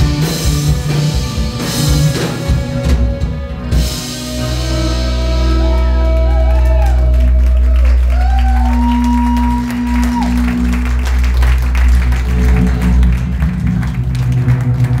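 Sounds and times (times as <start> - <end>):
live rock band playing: 0.0 - 15.0
audience clapping: 5.5 - 15.0.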